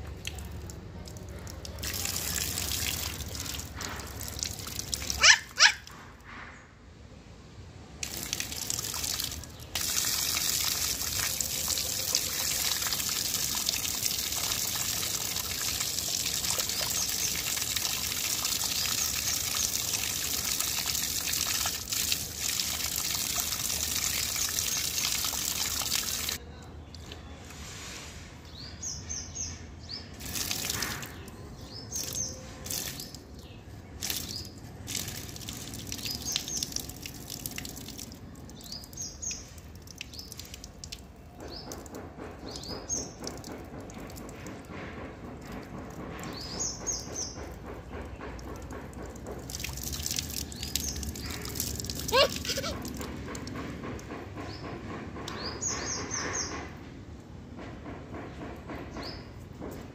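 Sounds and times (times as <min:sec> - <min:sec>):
water trickling and splashing: 0:00.0 - 0:06.2, 0:07.9 - 0:56.7
child squealing: 0:05.2 - 0:05.8, 0:52.0 - 0:52.8.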